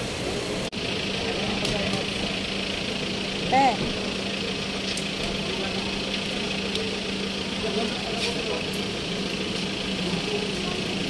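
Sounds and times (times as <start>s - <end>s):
crowd chatter: 0.0s - 11.0s
idling vehicle engines: 0.0s - 11.0s.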